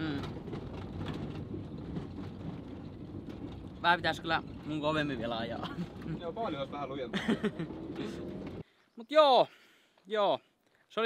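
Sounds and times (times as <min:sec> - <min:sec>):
van engine and road rumble: 0:00.0 - 0:08.7.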